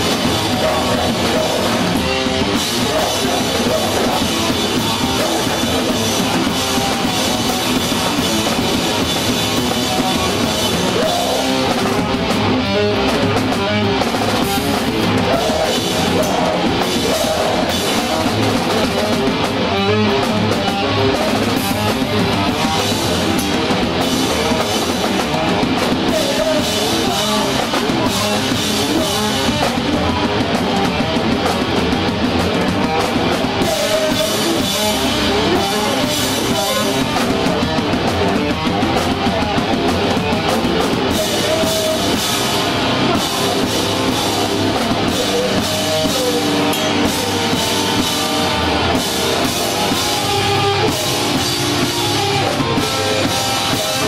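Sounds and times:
distorted electric guitars: 0.0s - 54.0s
pounding drum kit: 0.0s - 54.0s.

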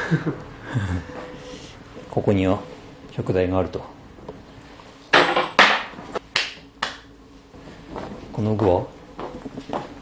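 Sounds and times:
sharp hand slaps: 6.3s - 7.1s.

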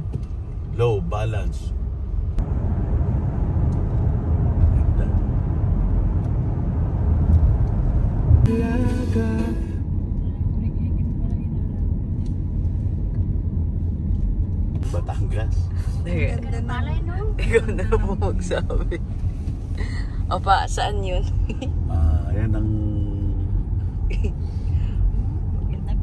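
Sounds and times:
car cabin road rumble: 0.0s - 26.0s
voices: 19.8s - 24.3s.

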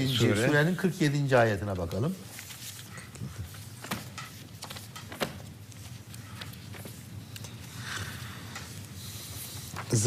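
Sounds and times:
book pages turning: 2.2s - 10.0s.

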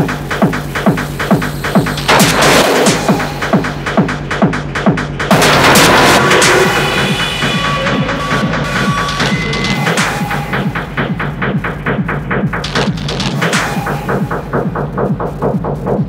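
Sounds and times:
distorted noisy layers: 0.0s - 16.0s
fast kick drum: 0.0s - 16.0s
high sustained synth tones: 5.3s - 11.2s.

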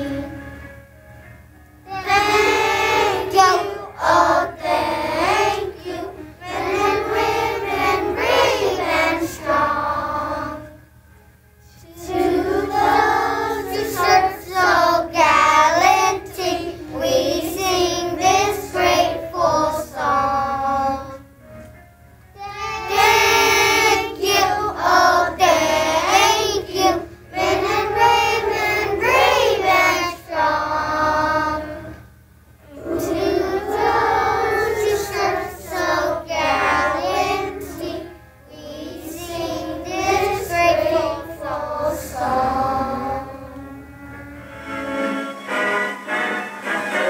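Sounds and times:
children singing: 0.0s - 0.5s, 1.9s - 10.8s, 11.8s - 21.2s, 22.4s - 32.0s, 32.6s - 47.0s.

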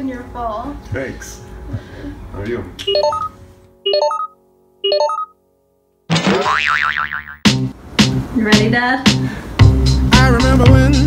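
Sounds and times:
comic boing sound effect: 6.1s - 7.5s
music with a beat: 9.1s - 11.0s.

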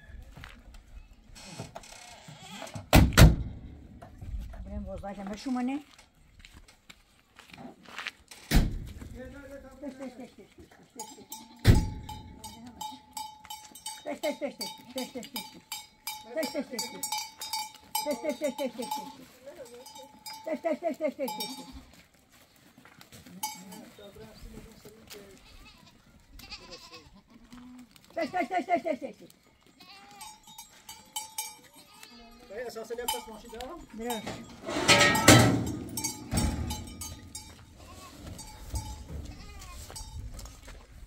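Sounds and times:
animal bells clinking: 9.8s - 25.9s, 28.2s - 41.0s
goats bleating: 11.0s - 11.9s, 17.9s - 22.0s, 25.2s - 29.0s, 29.6s - 30.6s, 31.7s - 32.8s, 35.6s - 40.0s.

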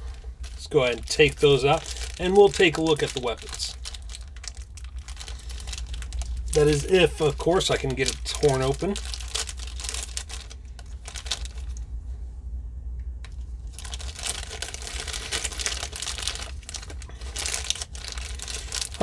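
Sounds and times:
plastic bag tearing and crinkling: 0.0s - 11.8s, 13.7s - 19.0s
low hum: 0.0s - 19.0s.

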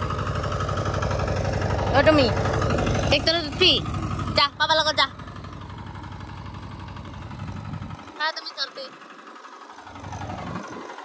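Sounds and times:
walking tractor engine chugging: 0.0s - 11.0s.

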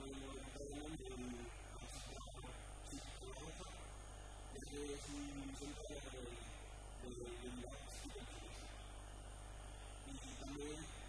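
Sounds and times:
man speaking quietly: 0.0s - 8.8s, 10.0s - 11.0s
electrical mains hum: 0.0s - 11.0s.

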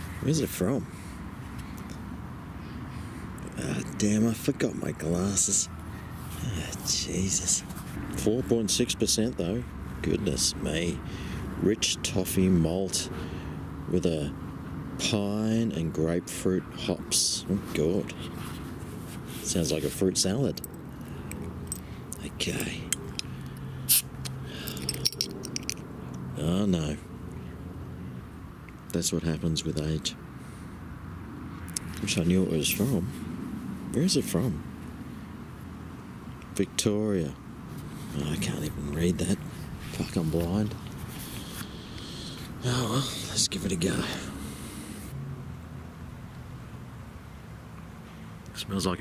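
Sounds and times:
low outdoor background rumble: 0.0s - 49.0s.

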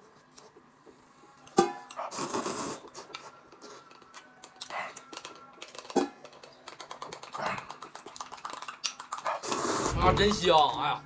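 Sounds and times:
eating sound: 1.9s - 10.2s.

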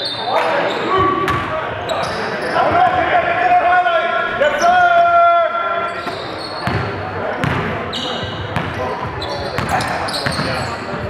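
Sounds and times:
sneaker squeaks: 0.0s - 2.8s, 5.8s - 11.0s.

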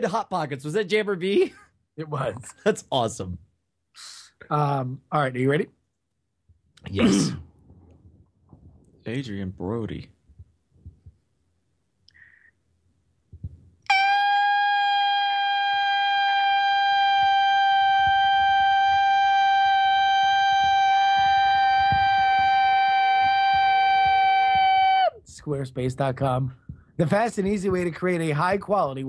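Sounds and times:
loud high steady tone: 13.9s - 25.1s.

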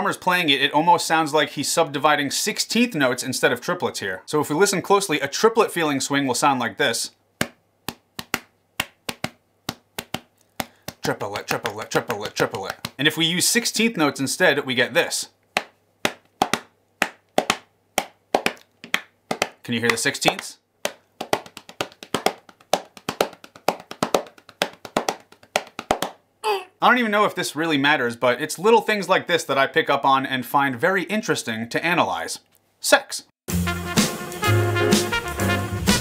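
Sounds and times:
sharp dry taps in swing rhythm: 7.4s - 13.2s, 15.5s - 26.2s, 33.6s - 36.0s.

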